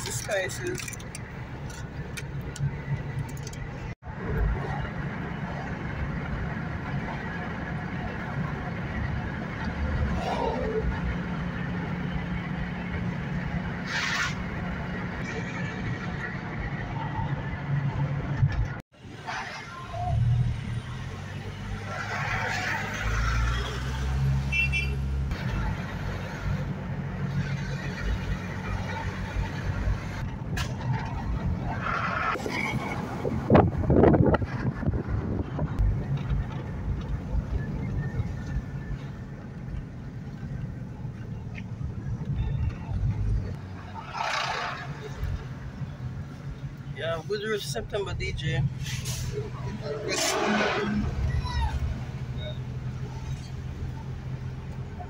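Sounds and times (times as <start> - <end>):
car interior engine and tyre rumble: 0.0 - 55.0.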